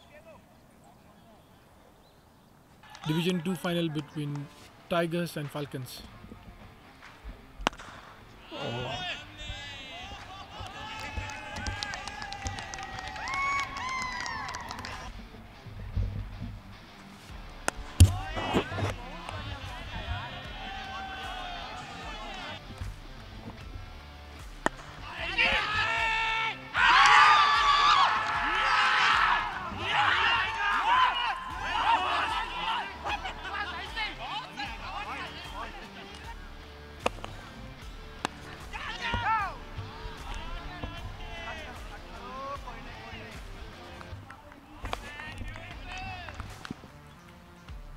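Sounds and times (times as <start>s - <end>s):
players shouting: 2.8s - 4.4s, 7.7s - 15.2s, 17.7s - 22.8s, 24.6s - 46.6s
fielders cheering: 2.8s - 4.6s, 7.7s - 15.5s, 17.7s - 23.0s, 24.4s - 46.9s.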